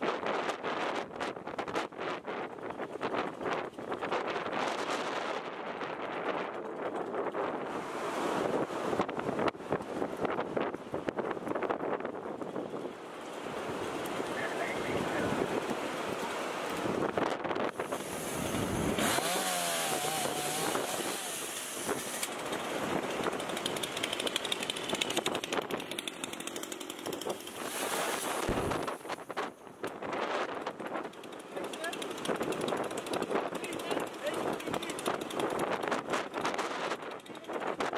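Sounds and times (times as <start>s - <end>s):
outdoor noise: 0.0s - 37.9s
people talking: 14.3s - 15.5s, 31.5s - 32.1s, 33.5s - 35.2s, 37.2s - 37.7s
chainsaw running and revving: 17.7s - 29.0s, 31.1s - 37.6s.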